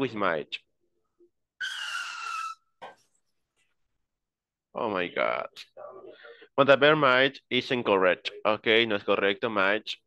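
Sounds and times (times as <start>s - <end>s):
tyre screech: 1.6s - 2.8s.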